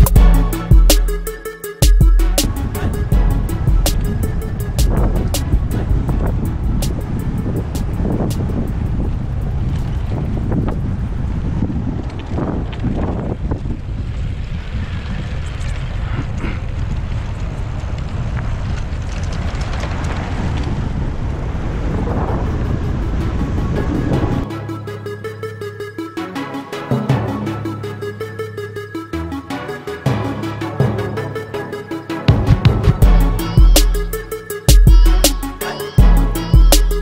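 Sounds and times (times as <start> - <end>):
background music with a beat: 0.0 - 8.8, 24.2 - 37.0
wind buffeting microphone: 2.1 - 24.5.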